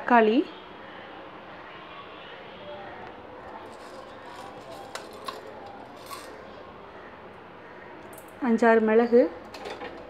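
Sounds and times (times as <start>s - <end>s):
faint voices: 0.6s - 8.0s
kitchen items clicking: 3.5s - 6.5s, 9.1s - 10.0s.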